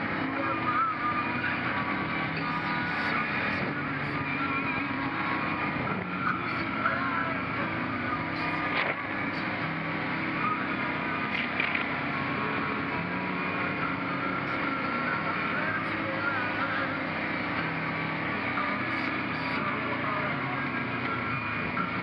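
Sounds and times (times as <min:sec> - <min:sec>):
atv engine running: 0:00.0 - 0:22.0.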